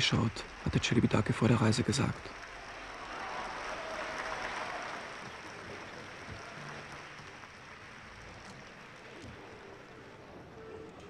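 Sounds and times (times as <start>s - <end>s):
audience applauding: 0.0s - 10.2s.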